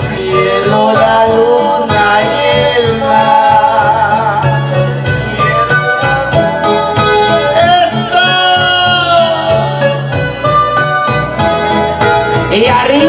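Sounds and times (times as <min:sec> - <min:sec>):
electronic keyboard music: 0:00.0 - 0:13.0.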